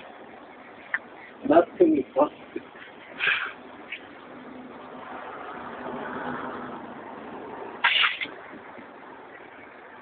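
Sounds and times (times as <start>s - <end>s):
vehicle passing: 3.2s - 10.0s.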